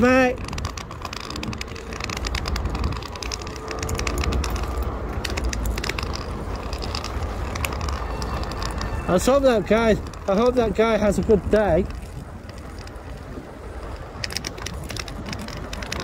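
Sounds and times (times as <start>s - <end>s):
quick clicks and rattles: 0.0s - 16.0s
road traffic rumble: 0.0s - 16.0s.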